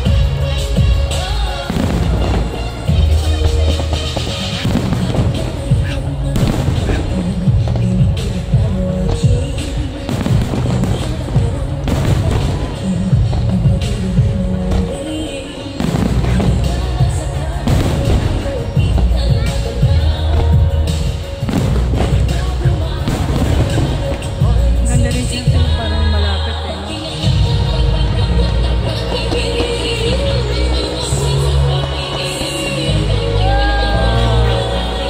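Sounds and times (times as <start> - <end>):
fireworks bursting: 0.0 - 35.0
loud music: 0.0 - 35.0.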